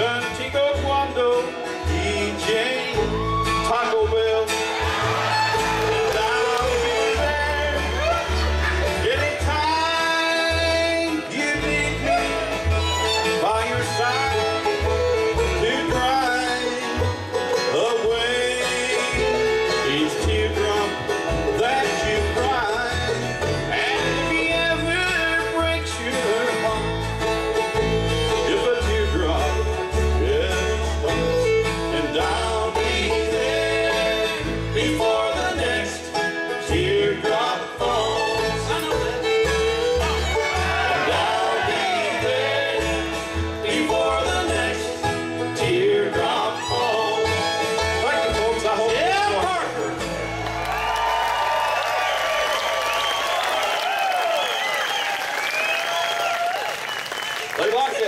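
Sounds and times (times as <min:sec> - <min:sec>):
banjo: 0:00.0 - 0:51.9
acoustic guitars: 0:00.0 - 0:58.0
fiddle: 0:00.0 - 0:58.0.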